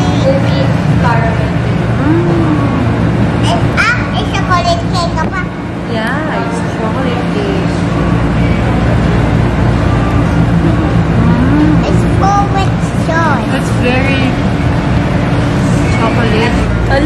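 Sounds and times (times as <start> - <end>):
loud low machine hum: 0.0 - 17.0.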